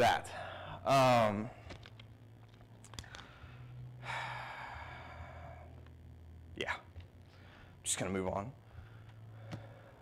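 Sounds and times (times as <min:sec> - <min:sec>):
low steady hum: 0:00.0 - 0:10.0.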